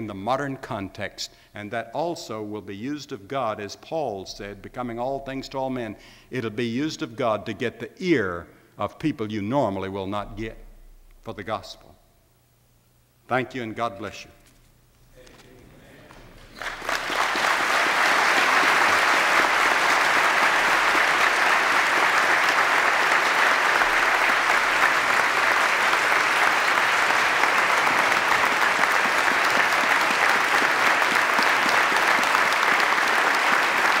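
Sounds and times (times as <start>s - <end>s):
large audience applauding: 16.1s - 34.0s.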